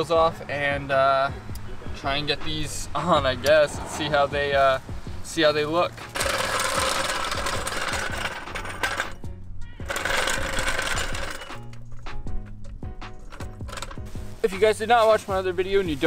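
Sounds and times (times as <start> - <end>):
background music: 0.0 - 16.0
floor jack wheels rattling on asphalt: 3.0 - 9.2, 9.8 - 11.8, 13.1 - 14.1.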